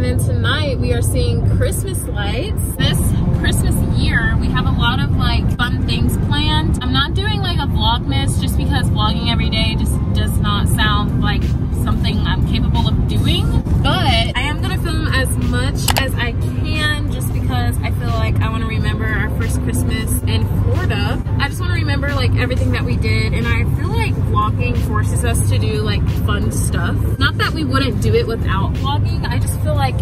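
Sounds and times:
car road and engine rumble: 0:00.0 - 0:30.0
woman talking: 0:00.0 - 0:30.0.

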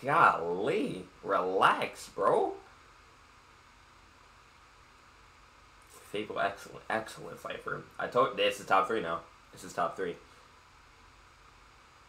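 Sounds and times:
faint microphone hiss: 0:00.0 - 0:12.0
low hum: 0:00.0 - 0:12.0.

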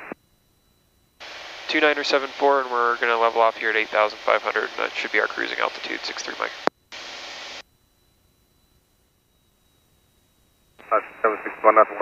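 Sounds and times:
voice over aircraft radio: 0:01.7 - 0:06.6, 0:10.8 - 0:12.0.

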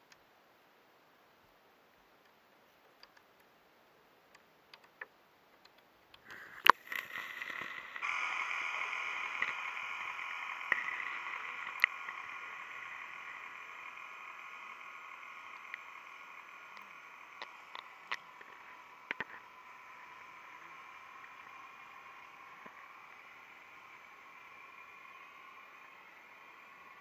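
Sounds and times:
whirring hiss with held tones: 0:00.0 - 0:27.0
faint underwater ticks: 0:04.3 - 0:27.0.

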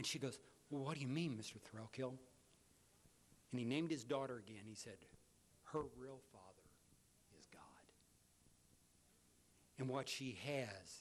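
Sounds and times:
man speaking quietly: 0:03.6 - 0:08.0.

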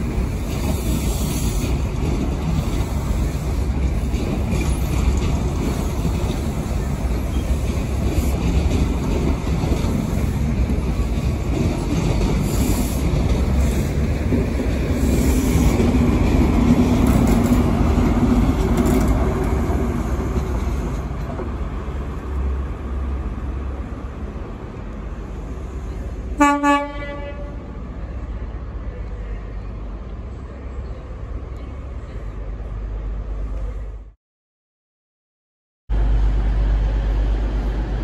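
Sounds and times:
train carriages rumbling past: 0:00.0 - 0:34.2
train horn toots: 0:26.4 - 0:27.7.

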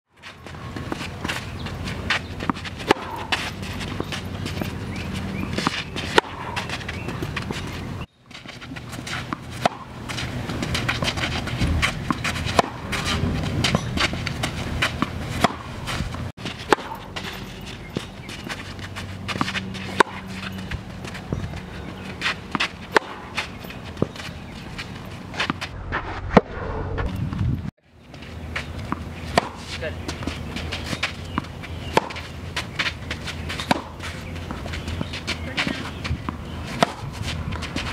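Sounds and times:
footsteps on court: 0:00.2 - 0:26.1, 0:27.1 - 0:37.9
tennis balls hit with rackets: 0:00.3 - 0:25.7, 0:28.2 - 0:37.9.

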